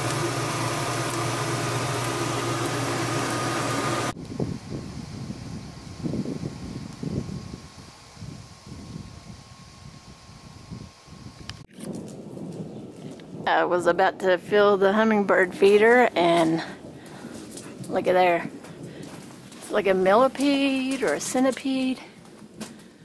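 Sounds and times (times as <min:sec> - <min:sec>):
machine hum with hiss: 0:00.0 - 0:11.7
wind rumbling on microphone: 0:04.1 - 0:23.0.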